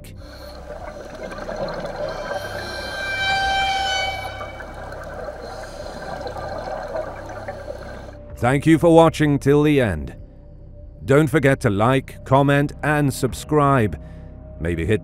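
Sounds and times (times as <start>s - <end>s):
steady tones: 0.0s - 8.2s
underwater rumble and hiss: 0.0s - 8.2s.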